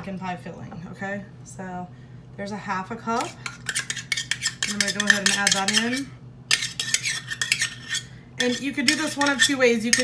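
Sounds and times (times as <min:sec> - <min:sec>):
utensil scraping a dish: 0:03.0 - 0:10.0.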